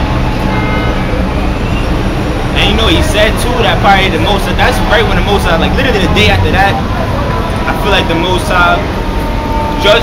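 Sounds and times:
city street traffic rumble: 0:00.0 - 0:10.0
faint high whine: 0:07.2 - 0:10.0.

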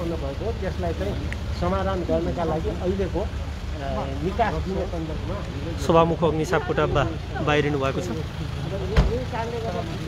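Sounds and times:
vehicle engine passing slowly: 0:00.0 - 0:10.0.

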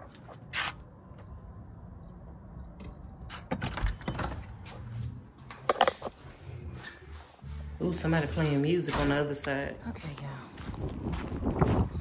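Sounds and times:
door opening: 0:02.8 - 0:04.8
person walking: 0:04.6 - 0:12.0.

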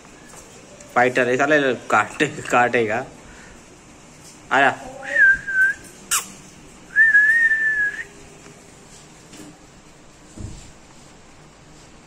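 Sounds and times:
person whistling: 0:05.1 - 0:05.9, 0:06.9 - 0:08.1.

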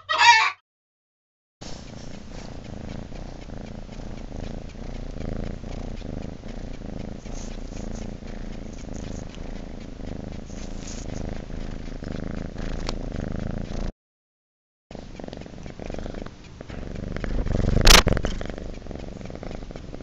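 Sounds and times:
cat purring: 0:01.6 - 0:13.9, 0:14.9 - 0:20.0.

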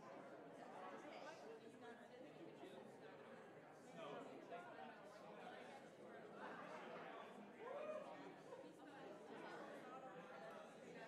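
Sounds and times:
murmur of many people chatting: 0:00.0 - 0:11.0.

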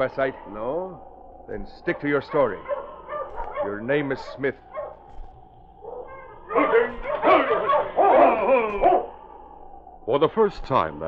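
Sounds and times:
sled dogs barking: 0:01.8 - 0:09.7.

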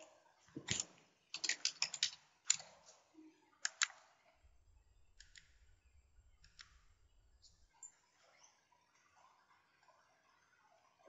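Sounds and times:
computer keyboard typing: 0:00.7 - 0:02.8, 0:03.7 - 0:04.0.

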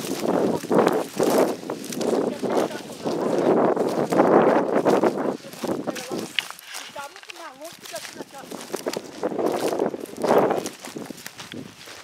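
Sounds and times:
dry brush rustling: 0:00.0 - 0:12.0
footsteps crunching: 0:00.0 - 0:12.0.

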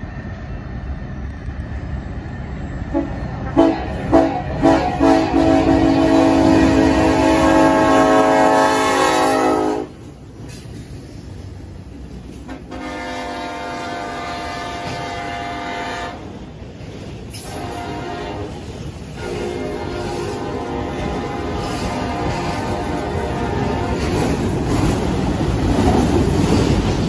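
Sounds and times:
freight train rumbling past: 0:00.0 - 0:27.0
locomotive air horn blasts: 0:02.9 - 0:10.0, 0:12.5 - 0:16.3, 0:17.4 - 0:24.2.

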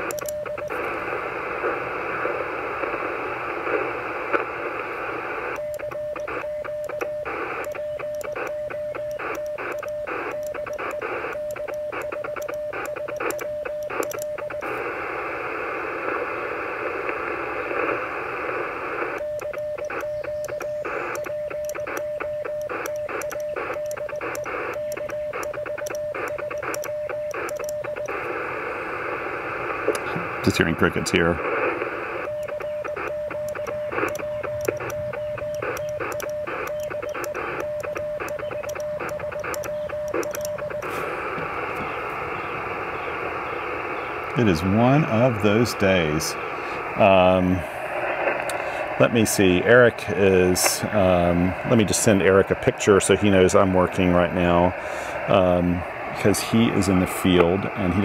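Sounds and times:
morse code beeps: 0:00.0 - 0:00.9, 0:05.6 - 0:14.8, 0:19.2 - 0:28.4, 0:32.0 - 0:42.2
radio band-noise hiss: 0:00.0 - 0:58.0.

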